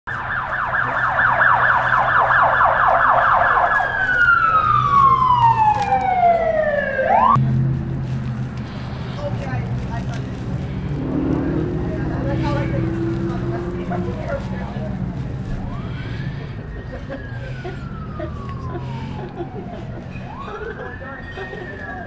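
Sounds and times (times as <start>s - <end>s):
emergency vehicle siren wailing: 0.1s - 8.2s, 10.6s - 22.0s.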